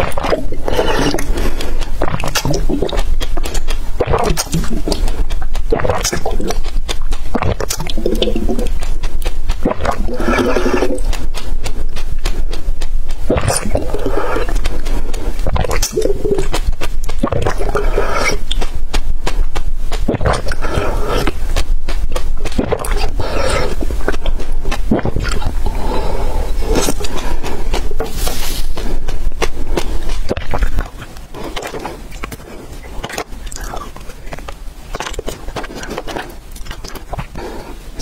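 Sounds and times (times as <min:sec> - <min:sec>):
gulping and slurping water: 0:00.0 - 0:38.0
wet mouth clicks: 0:00.0 - 0:38.0.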